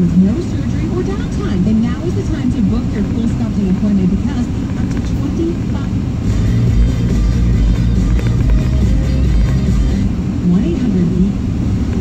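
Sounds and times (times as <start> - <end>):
radio voice talking: 0.0 - 6.0
car rumble on road: 0.0 - 12.0
music with strong bass: 6.2 - 10.1.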